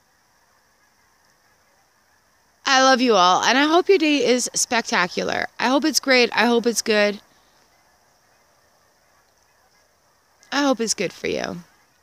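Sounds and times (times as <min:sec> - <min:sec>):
distant geese honking: 0:00.0 - 0:12.0.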